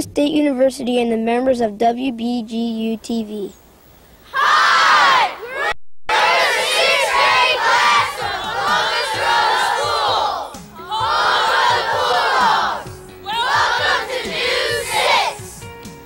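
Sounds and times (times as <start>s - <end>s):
children shouting in unison: 4.3s - 15.6s.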